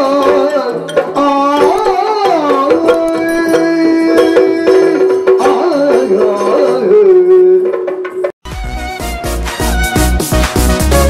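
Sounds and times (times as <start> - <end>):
person singing melodic line: 0.0 - 7.8
drum strokes: 0.0 - 11.0.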